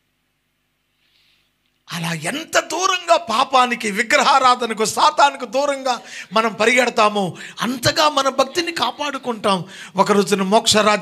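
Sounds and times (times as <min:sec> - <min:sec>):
faint breath: 0:01.0 - 0:01.6, 0:06.0 - 0:06.3, 0:07.4 - 0:07.6, 0:09.7 - 0:10.0
man speaking through microphone: 0:01.9 - 0:11.0.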